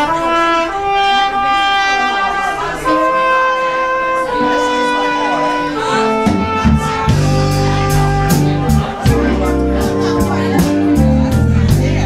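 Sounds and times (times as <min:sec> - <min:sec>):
horn section chords: 0:00.0 - 0:12.0
bass and drums: 0:06.2 - 0:12.0.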